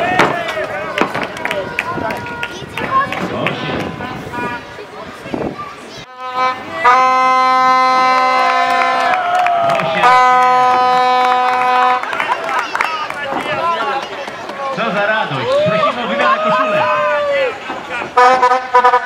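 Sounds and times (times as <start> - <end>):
voices: 0.0 - 19.0
horn blasts: 6.1 - 12.2, 18.2 - 19.0.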